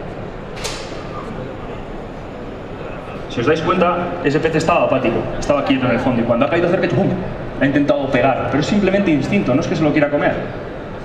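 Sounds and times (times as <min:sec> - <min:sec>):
large hall noise: 0:00.0 - 0:11.0.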